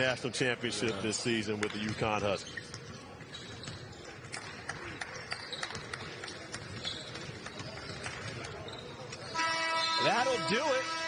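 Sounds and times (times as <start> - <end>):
sneakers squeaking on hardwood: 1.6 - 10.0.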